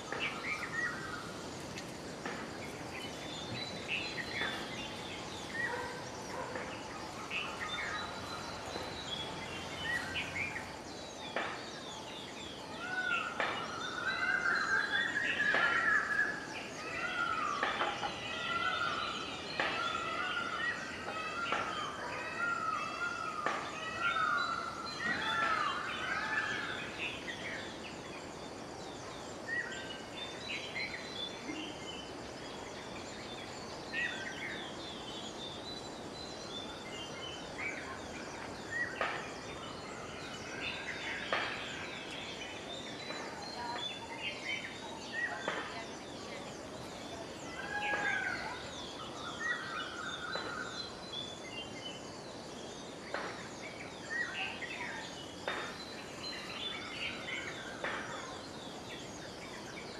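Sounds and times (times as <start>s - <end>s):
birds chirping: 0.0s - 59.9s.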